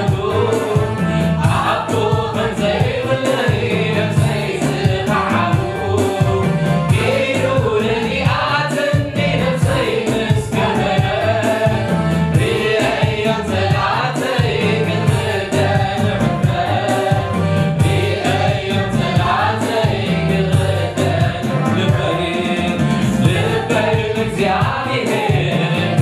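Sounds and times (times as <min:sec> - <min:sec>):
bass line and steady beat: 0:00.0 - 0:26.0
choir singing: 0:00.0 - 0:26.0
man singing lead: 0:00.0 - 0:26.0.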